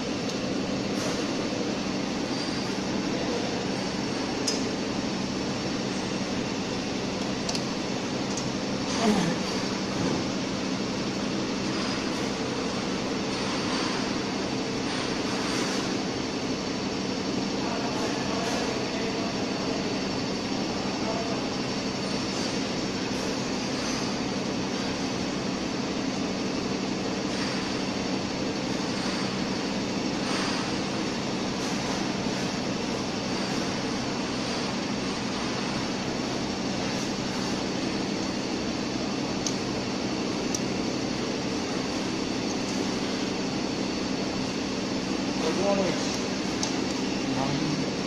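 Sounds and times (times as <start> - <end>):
workshop machinery droning: 0.0 - 48.0.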